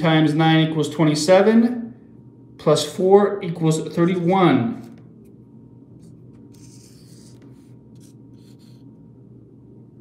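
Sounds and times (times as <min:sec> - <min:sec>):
marker scratching on whiteboard: 0:06.0 - 0:08.9.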